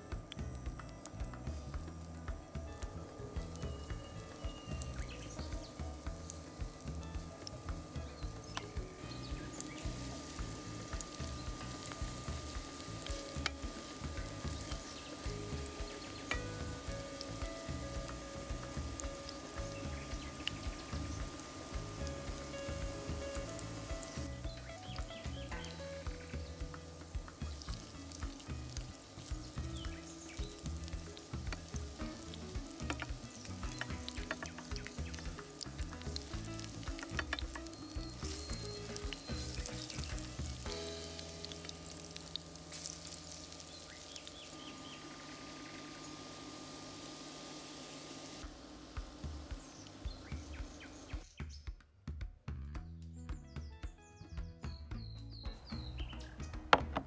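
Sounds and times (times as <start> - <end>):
fritters sizzling in oil: 0.0 - 51.3.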